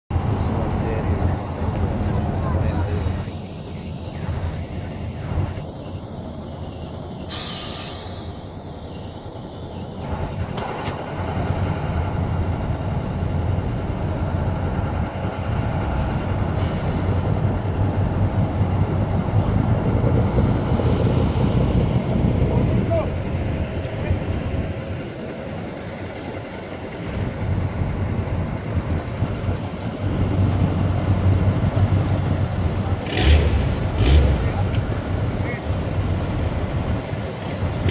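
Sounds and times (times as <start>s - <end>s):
diesel vehicles rumbling past: 0.1s - 37.9s
short hiss: 7.3s - 8.5s.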